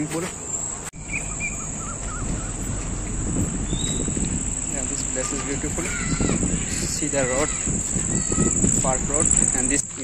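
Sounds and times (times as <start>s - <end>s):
bird chirping and warbling: 0.4s - 9.8s
insects droning: 0.5s - 6.2s.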